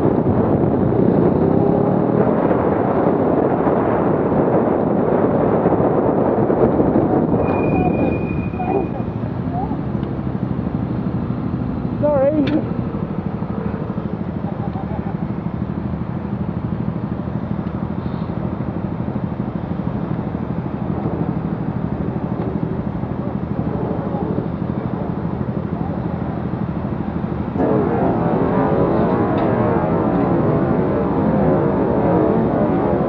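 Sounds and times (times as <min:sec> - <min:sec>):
road traffic engine hum: 0:00.0 - 0:33.0.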